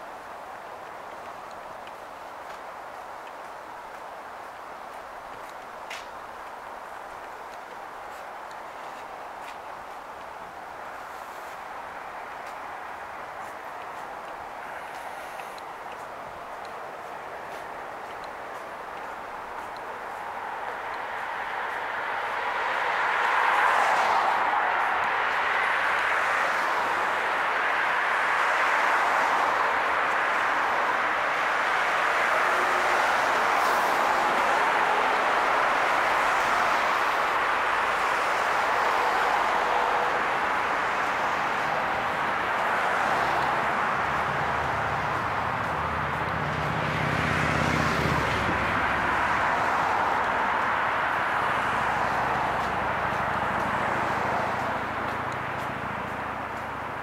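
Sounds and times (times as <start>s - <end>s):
heavy vehicle engine drone: 0.0s - 57.0s
tyres hissing on road: 0.0s - 57.0s.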